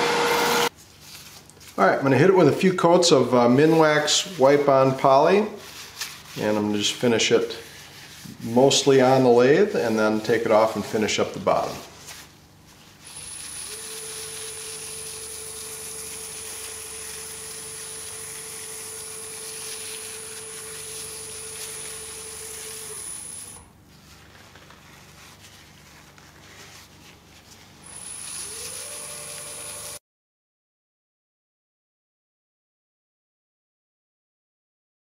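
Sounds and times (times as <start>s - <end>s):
wood lathe whine: 0.0s - 0.7s, 13.0s - 23.7s, 27.8s - 30.0s.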